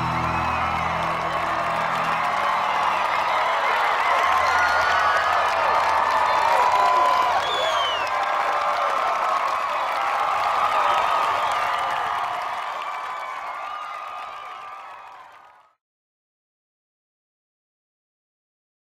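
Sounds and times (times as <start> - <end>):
crowd cheering and screaming: 0.0 - 15.6
crowd clapping: 0.0 - 15.8.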